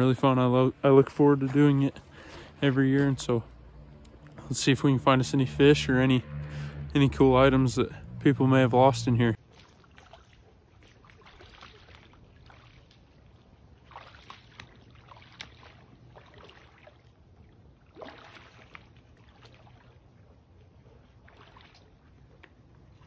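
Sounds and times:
boots splashing through puddle: 0:09.4 - 0:17.2, 0:17.8 - 0:20.0, 0:21.2 - 0:21.9.

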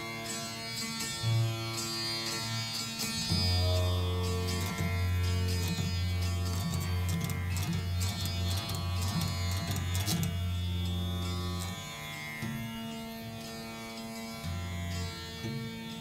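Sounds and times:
veena playing: 0:00.0 - 0:16.0.

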